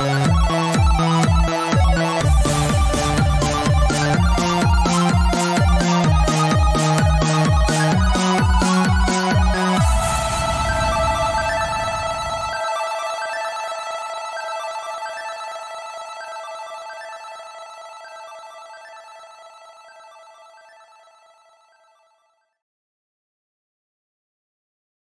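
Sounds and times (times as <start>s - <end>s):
sustained synth chord: 0.0s - 21.1s
noisy low electronic music: 0.0s - 21.9s
repeating high synth notes: 0.0s - 21.9s.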